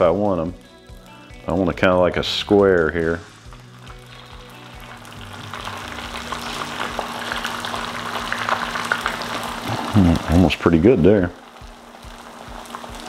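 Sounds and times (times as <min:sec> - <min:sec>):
eggs sizzling on a griddle: 0:00.0 - 0:13.0.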